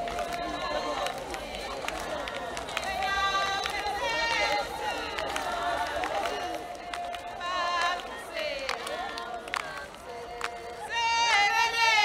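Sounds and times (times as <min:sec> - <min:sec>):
women singing and chanting: 0:00.0 - 0:12.0.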